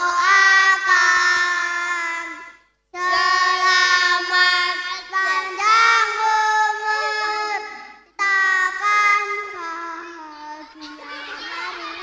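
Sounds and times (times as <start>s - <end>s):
children singing into a microphone: 0.0s - 12.0s.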